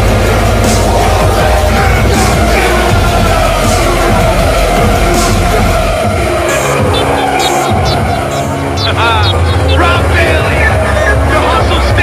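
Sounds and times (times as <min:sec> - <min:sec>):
loud background music: 0:00.0 - 0:12.0.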